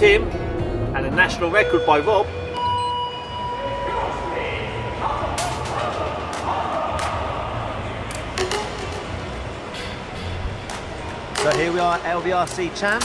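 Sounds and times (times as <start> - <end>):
steady background hum: 0.0 - 13.0
distant voices: 3.3 - 13.0.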